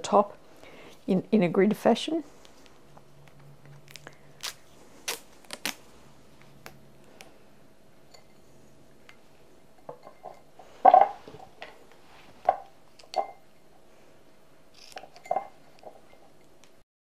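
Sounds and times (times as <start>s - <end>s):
sticky tape being stretched: 3.2s - 5.8s
clinks and knocks on glass: 9.8s - 11.2s, 15.2s - 15.6s.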